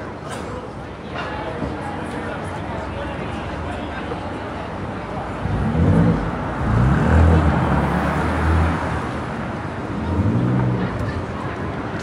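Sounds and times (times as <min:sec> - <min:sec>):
street traffic: 0:00.0 - 0:12.0
vehicle engine accelerating: 0:05.4 - 0:11.2.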